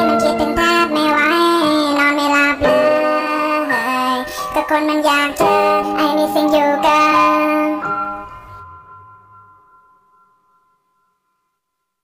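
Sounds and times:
pop backing music: 0:00.0 - 0:09.1.

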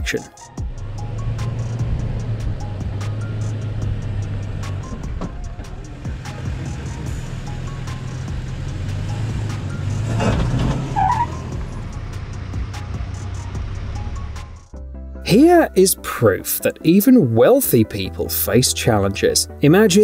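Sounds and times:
background music with steady beat: 0:00.0 - 0:20.0
pickup truck engine under load: 0:00.6 - 0:14.8.

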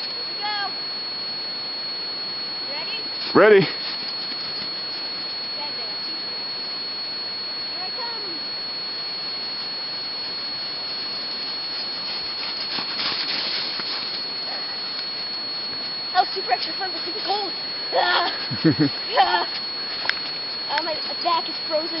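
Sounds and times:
sliding on snow: 0:11.0 - 0:15.2, 0:15.8 - 0:22.0.

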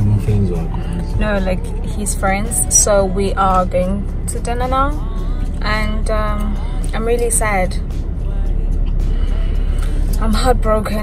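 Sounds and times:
car road rumble: 0:00.0 - 0:11.0
faint music: 0:00.0 - 0:11.0.

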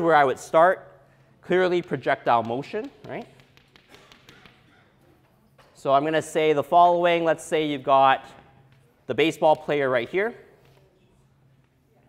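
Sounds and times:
chalk tapping on chalkboard: 0:01.6 - 0:05.0.

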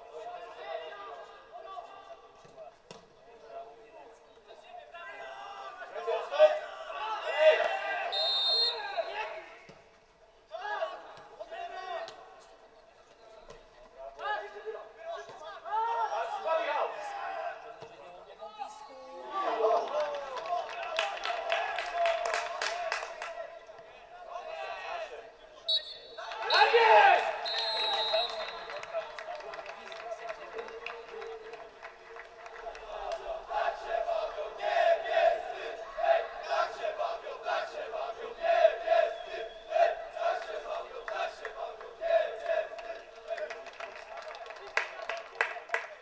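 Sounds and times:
crowd shouting and chanting: 0:04.6 - 0:09.7, 0:21.0 - 0:29.1, 0:32.4 - 0:43.6.

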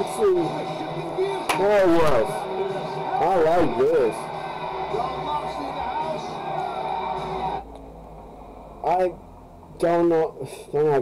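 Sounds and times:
man's voice on broadcast: 0:00.0 - 0:04.3, 0:09.8 - 0:11.0
man talking: 0:01.5 - 0:02.3, 0:08.8 - 0:09.2, 0:09.8 - 0:11.0.

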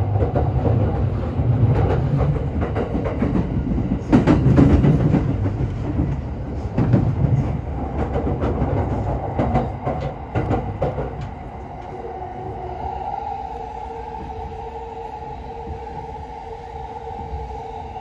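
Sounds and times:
train running noise: 0:00.0 - 0:18.0.

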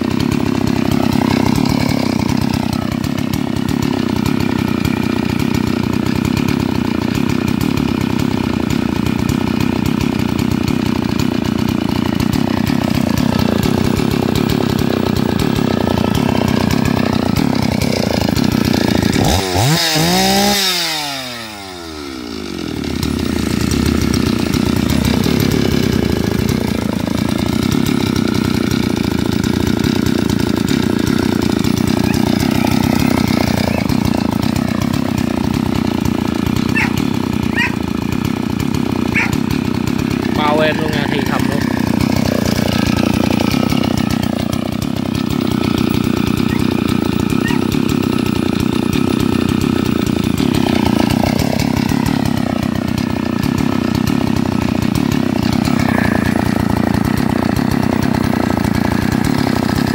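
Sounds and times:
chainsaw engine running: 0:00.0 - 0:59.9.

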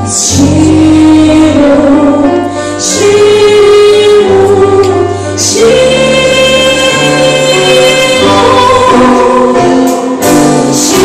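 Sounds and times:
live ensemble playing: 0:00.0 - 0:11.0
woman singing into microphone: 0:00.0 - 0:11.0.

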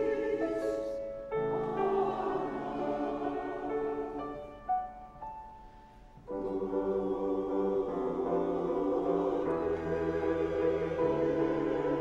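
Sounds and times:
mixed choir singing: 0:00.0 - 0:04.6, 0:06.3 - 0:12.0.

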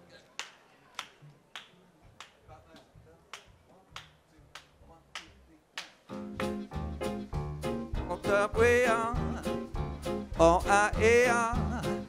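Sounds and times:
big band playing: 0:06.1 - 0:12.0.

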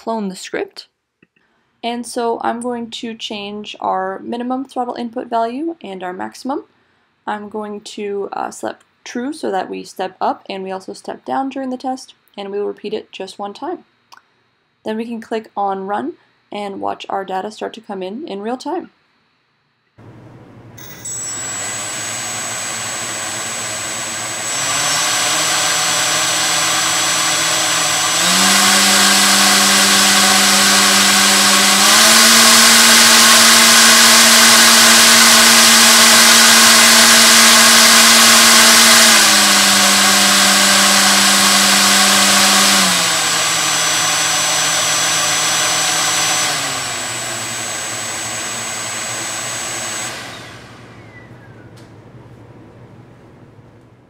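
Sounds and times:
motor and propeller whine: 0:20.0 - 0:52.0.

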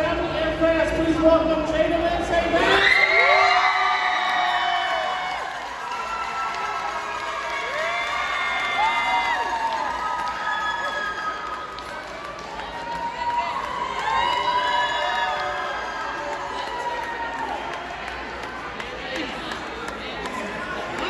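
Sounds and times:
crowd cheering and whooping: 0:02.6 - 0:18.3.

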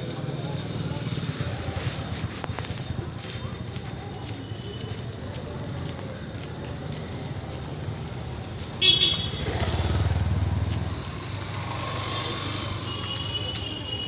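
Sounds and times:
road traffic hum: 0:00.0 - 0:14.0
horn toot: 0:08.8 - 0:09.8
motorcycle engine passing: 0:08.8 - 0:12.9.

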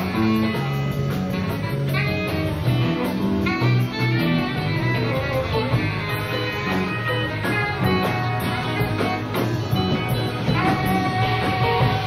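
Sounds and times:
distant live rock band: 0:00.0 - 0:12.0.

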